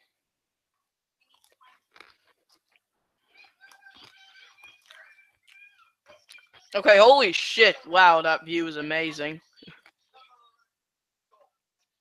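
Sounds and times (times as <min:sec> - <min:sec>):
person chewing crisps: 0:01.2 - 0:02.8.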